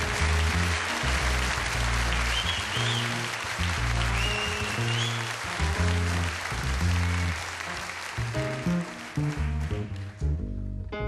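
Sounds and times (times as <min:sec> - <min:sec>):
double bass: 0:00.0 - 0:11.0
piano: 0:00.0 - 0:11.0.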